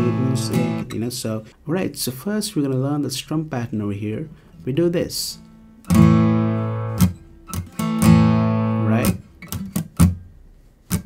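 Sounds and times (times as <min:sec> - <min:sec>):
palm-muted acoustic guitar strums: 0:00.0 - 0:01.2, 0:05.4 - 0:11.0.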